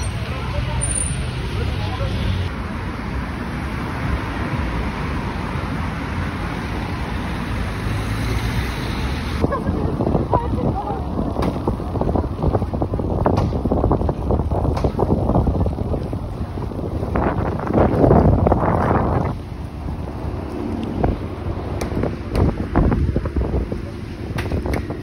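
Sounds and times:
wind buffeting microphone: 9.4 - 25.0.

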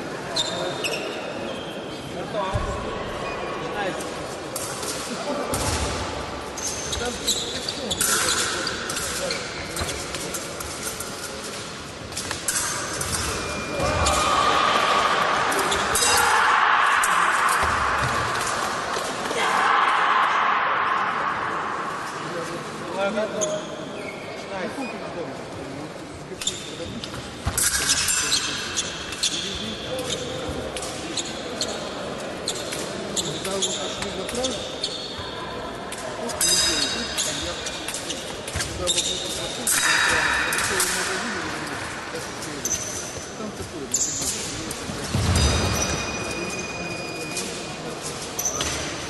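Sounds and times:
voices in a hall: 0.0 - 49.0.

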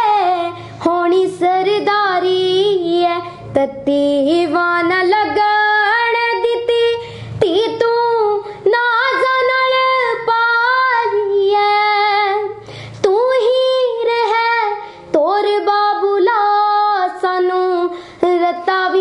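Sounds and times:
girl singing unaccompanied: 0.0 - 19.0.

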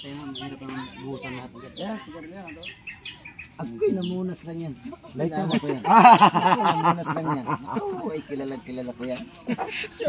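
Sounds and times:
children's voices: 0.0 - 4.1
high falling bird chirps: 0.0 - 4.4
chatter of people talking: 0.0 - 10.0.

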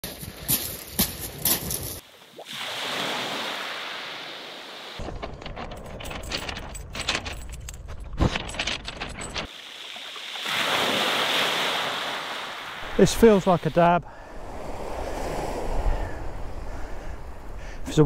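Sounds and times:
dog paws on pebbles: 0.0 - 2.0, 5.0 - 9.5
waves washing on shingle: 9.5 - 15.8
wind on microphone: 14.1 - 17.9.

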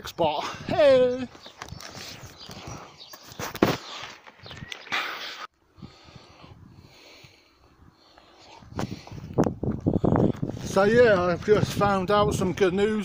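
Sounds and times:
faint outdoor background: 0.0 - 13.0.

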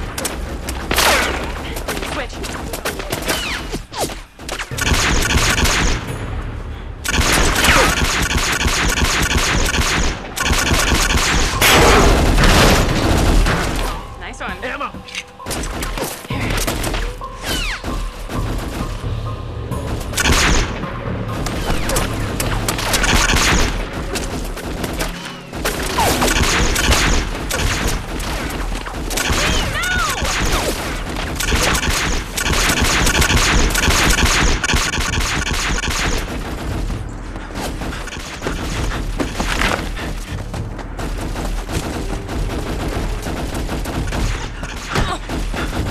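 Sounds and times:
rapid gunfire: 4.4 - 6.0, 7.1 - 13.8, 22.5 - 40.1, 41.0 - 45.9.

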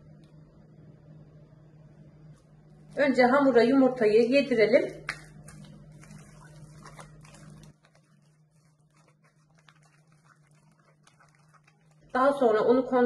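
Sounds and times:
low steady hum: 0.0 - 13.0
spatula scraping dough in glass bowl: 5.5 - 12.5.

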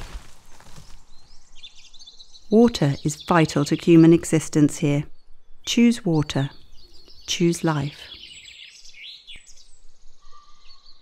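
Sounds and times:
faint outdoor hiss: 0.4 - 11.0
birds chirping and whistling: 6.2 - 11.0.

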